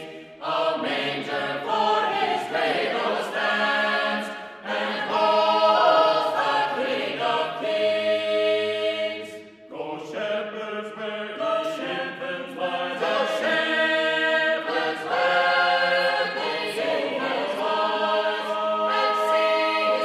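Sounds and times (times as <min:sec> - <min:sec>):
unaccompanied choir singing: 0:00.0 - 0:20.0.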